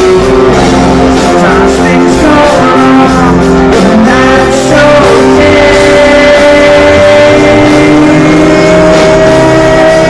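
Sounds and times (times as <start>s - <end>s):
live rock band playing: 0.0s - 10.0s
sustained electric guitar notes: 0.0s - 10.0s.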